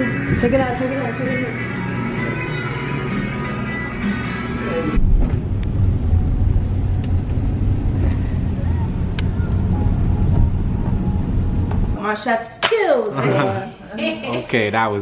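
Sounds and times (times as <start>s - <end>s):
guitar music: 0.0s - 5.1s
car road and engine rumble: 5.0s - 12.0s.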